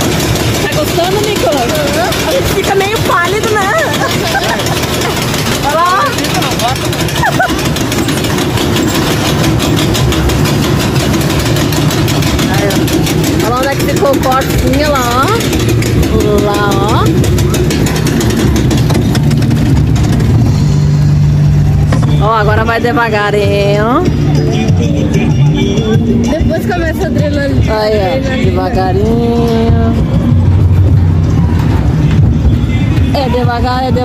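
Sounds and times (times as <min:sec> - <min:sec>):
rider voices: 0:00.0 - 0:34.0
roller coaster rumbling and rattling: 0:00.0 - 0:34.0.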